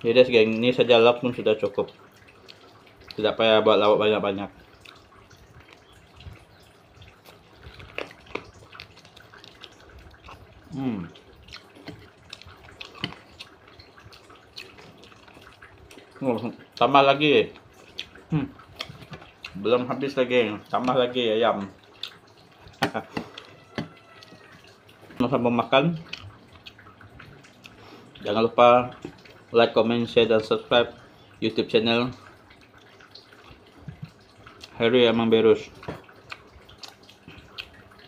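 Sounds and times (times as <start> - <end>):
wet chewing and mouth smacks: 2.1 - 3.2, 4.6 - 16.9, 17.5 - 19.6, 21.6 - 25.2, 26.0 - 28.3, 28.9 - 29.5, 32.2 - 34.8, 35.8 - 38.0.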